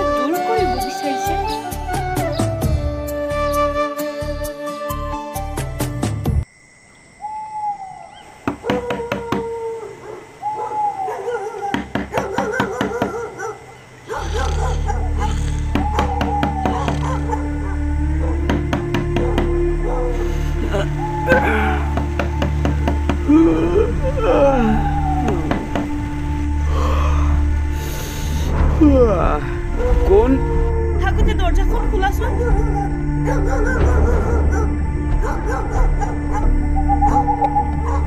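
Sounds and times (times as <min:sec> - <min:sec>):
low droning background music: 0:00.0 - 0:06.5, 0:07.2 - 0:38.0
dog barking: 0:10.0 - 0:15.4, 0:16.7 - 0:18.4, 0:32.3 - 0:38.0.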